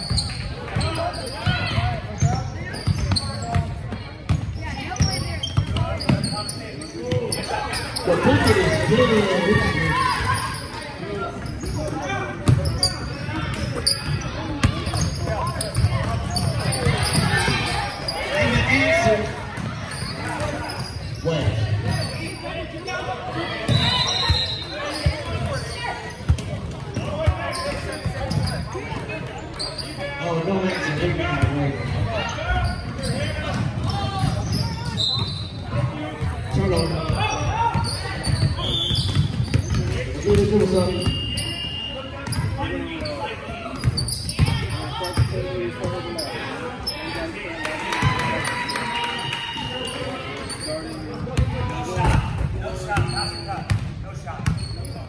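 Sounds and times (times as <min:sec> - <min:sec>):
people talking and calling out: 0:00.0 - 0:55.0.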